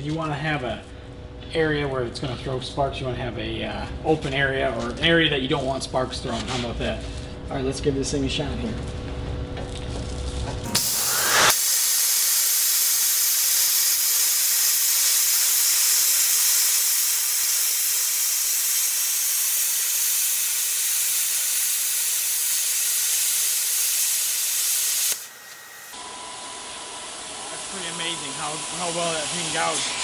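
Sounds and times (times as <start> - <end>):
plasma arc hissing: 10.7 - 26.0, 26.7 - 30.0.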